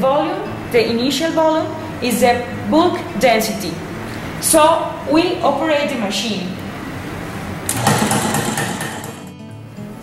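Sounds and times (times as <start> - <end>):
machine mechanical clatter: 7.7 - 9.3.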